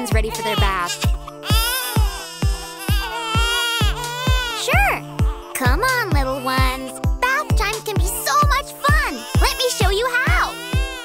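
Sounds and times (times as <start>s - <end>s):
babies wailing and crying: 0.0s - 11.0s
music with steady beat: 0.0s - 11.0s.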